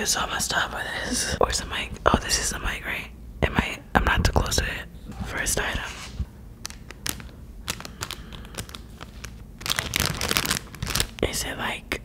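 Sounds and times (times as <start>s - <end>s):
plastic packaging crinkling: 6.6s - 11.3s.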